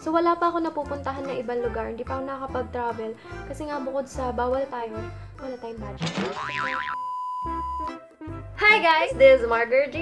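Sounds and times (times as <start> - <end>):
cartoon boing tone and beep: 6.0 - 7.0.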